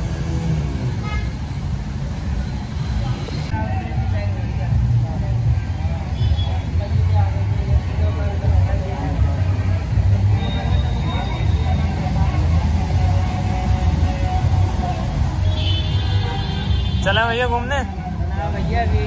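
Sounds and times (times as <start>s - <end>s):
vehicle engines rumbling: 0.0s - 19.0s
people's voices: 1.8s - 19.0s.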